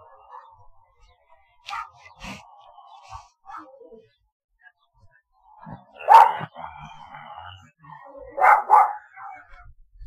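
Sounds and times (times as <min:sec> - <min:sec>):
dog barking: 0:00.0 - 0:00.6, 0:01.6 - 0:02.1, 0:03.4 - 0:03.8, 0:06.0 - 0:06.5, 0:08.3 - 0:09.6.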